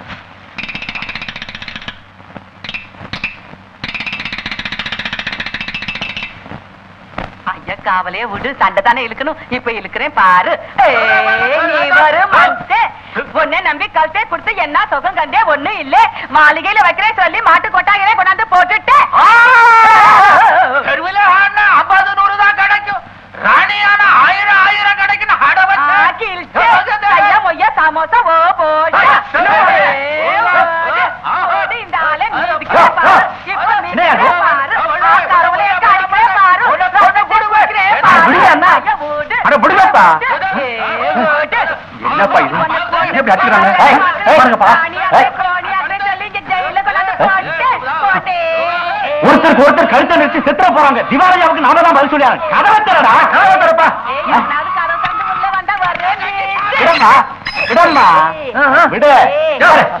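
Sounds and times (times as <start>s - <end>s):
people shouting in yelping voices: 10.8s - 12.8s, 18.9s - 22.6s, 23.5s - 27.5s, 28.8s - 38.9s, 46.5s - 58.3s
person yelping: 18.9s - 20.9s, 56.5s - 58.4s.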